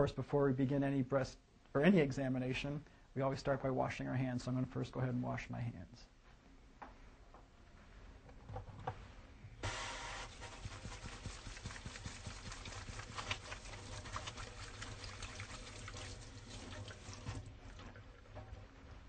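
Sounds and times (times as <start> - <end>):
tap water running into sink: 9.6 - 18.6
hands splashing and clicks: 11.0 - 15.3.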